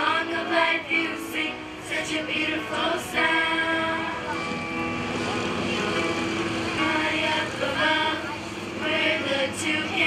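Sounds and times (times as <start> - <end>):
children's choir singing: 0.0 - 10.0
steady background noise: 0.0 - 10.0.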